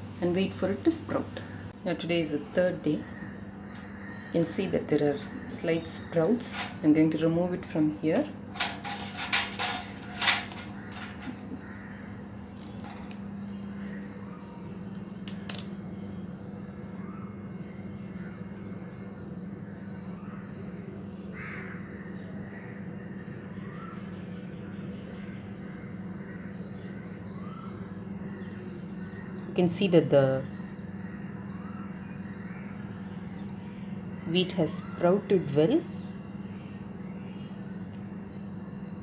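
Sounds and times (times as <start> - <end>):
steady low hum: 0.0 - 39.0
faint bird calls: 2.8 - 6.8, 10.1 - 39.0.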